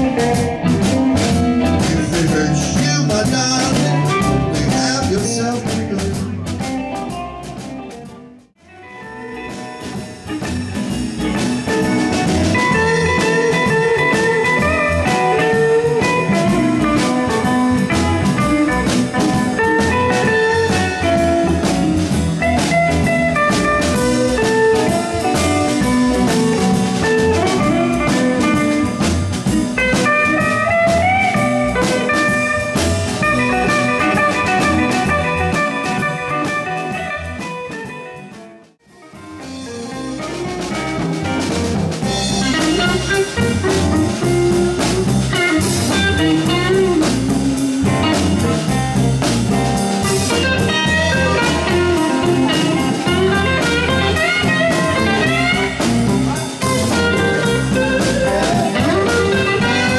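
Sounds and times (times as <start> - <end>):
blues guitar: 0.0 - 59.9
drum kit: 0.0 - 59.9.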